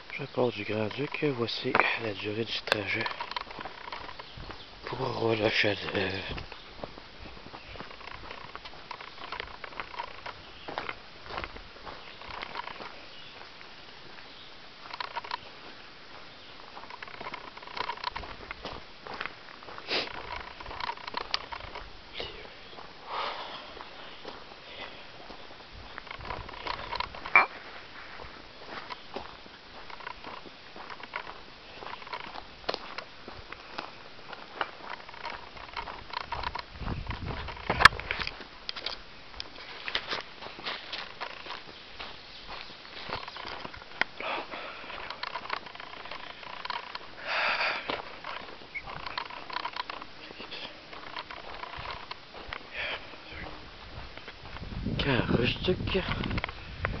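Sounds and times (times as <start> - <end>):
footsteps on dirt trail: 0.0 - 57.0.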